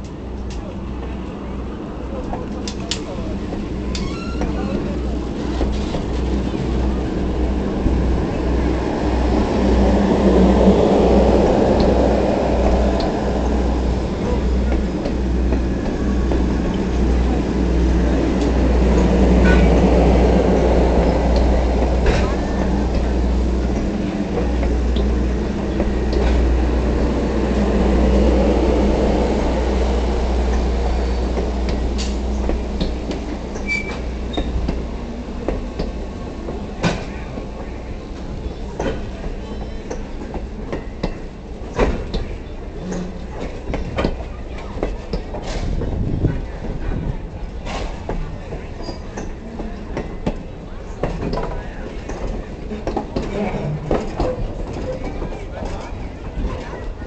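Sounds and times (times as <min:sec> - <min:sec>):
train rumbling on rails: 0:00.0 - 0:57.0.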